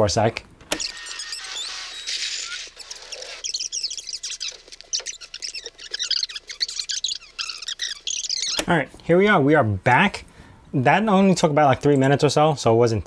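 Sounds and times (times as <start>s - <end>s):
high-pitched chirping squeaks: 0.8s - 8.7s.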